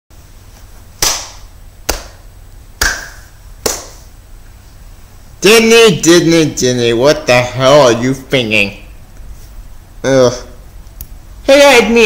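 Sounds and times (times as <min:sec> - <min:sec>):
slow hand claps: 0:01.0 - 0:02.2, 0:02.8 - 0:04.1.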